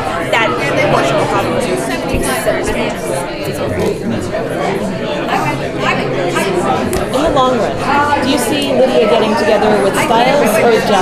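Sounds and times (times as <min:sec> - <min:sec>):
crowd chatter in large room: 0:00.0 - 0:11.0
person speaking: 0:00.3 - 0:11.0.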